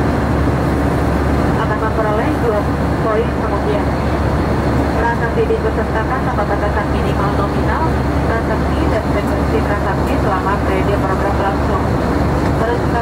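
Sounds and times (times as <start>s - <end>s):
airliner cabin hum: 0.0s - 13.0s.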